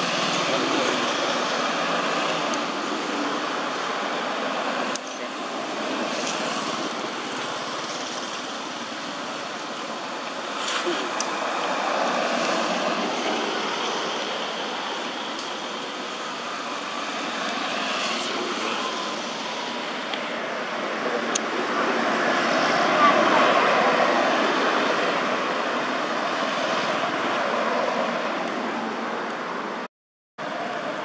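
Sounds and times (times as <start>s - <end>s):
road traffic: 0.0s - 31.0s.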